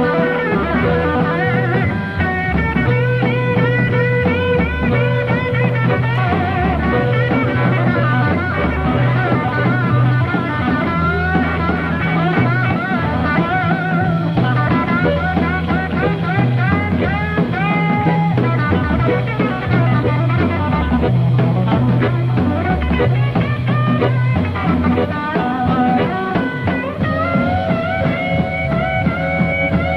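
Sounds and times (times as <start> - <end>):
bass line: 0.0 - 29.9
drums: 0.0 - 29.9
electric guitar with bent notes: 0.0 - 29.9.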